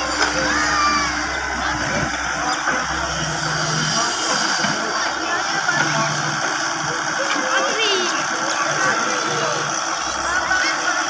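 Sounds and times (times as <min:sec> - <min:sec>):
low hum: 0:00.0 - 0:06.9
excavator diesel engine running: 0:00.0 - 0:11.0
hydraulics working: 0:00.0 - 0:11.0.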